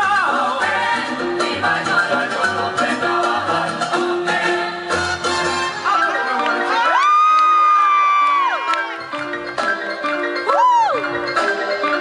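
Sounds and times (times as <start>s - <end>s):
upbeat dance music: 0.0s - 12.0s
high held whoop: 6.8s - 9.0s, 10.5s - 11.1s.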